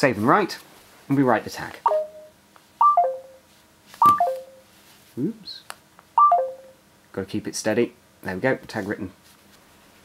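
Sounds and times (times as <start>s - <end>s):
phone chime descending tones: 1.9s - 3.4s, 4.0s - 4.7s, 6.2s - 6.8s.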